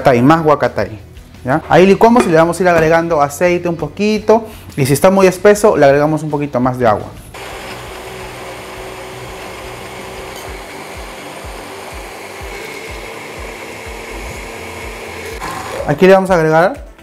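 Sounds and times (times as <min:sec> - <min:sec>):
blender running: 0:07.4 - 0:16.0.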